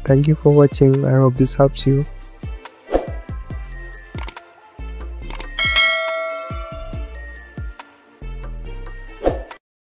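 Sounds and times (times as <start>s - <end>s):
background music with kick-drum beat: 2.2s - 4.1s
quick click: 5.3s - 5.6s
bright bell ding: 5.6s - 7.4s.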